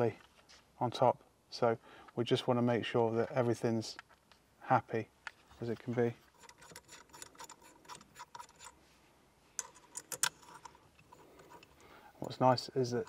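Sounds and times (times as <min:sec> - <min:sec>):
metal parts clicking: 0:05.7 - 0:08.8, 0:09.6 - 0:13.0.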